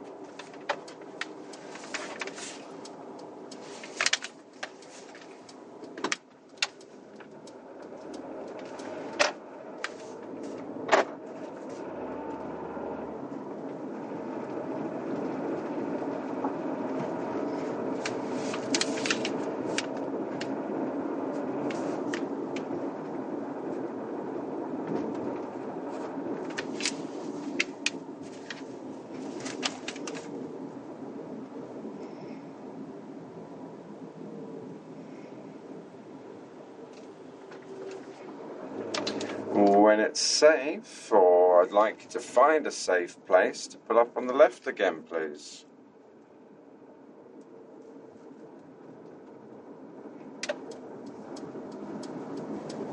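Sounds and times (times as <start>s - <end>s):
car engine and road noise: 0.0s - 52.9s.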